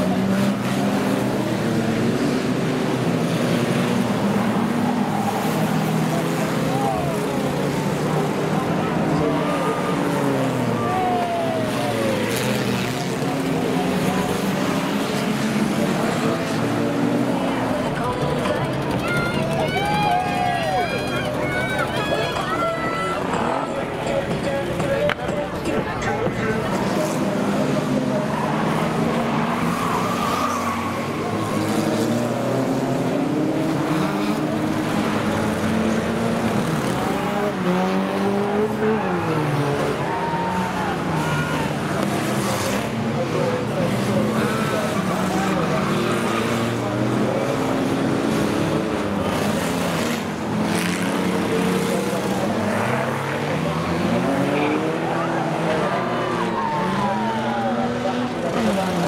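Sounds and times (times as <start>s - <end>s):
racing car engines revving: 0.0s - 59.0s
tyres skidding: 0.0s - 59.0s.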